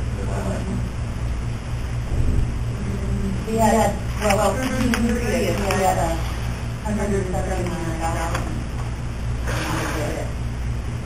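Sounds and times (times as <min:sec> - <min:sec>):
steady low hum: 0:00.0 - 0:11.0
rustling noise: 0:04.1 - 0:06.8.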